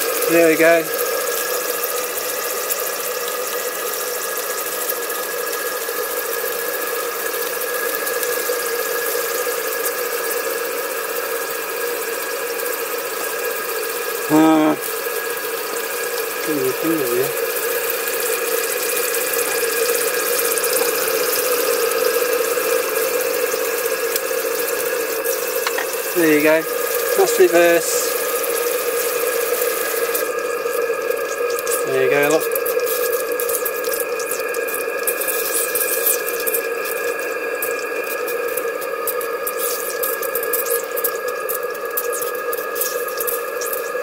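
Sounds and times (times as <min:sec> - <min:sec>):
model steam engine running: 0:00.0 - 0:41.0
short voice exclamation: 0:14.3 - 0:14.8, 0:16.4 - 0:17.4.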